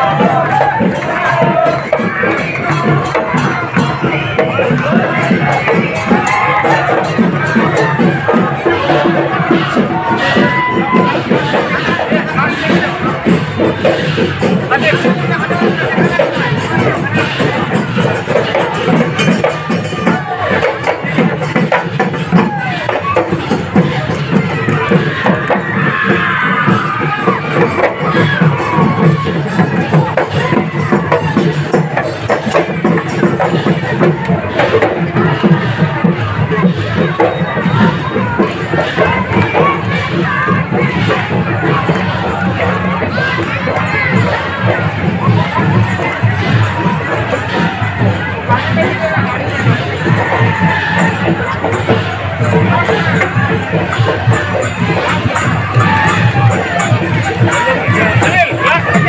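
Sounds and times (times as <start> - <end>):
crowd chatter: 0.0 - 59.0
percussion beat: 0.0 - 59.0
voices singing: 0.0 - 59.0.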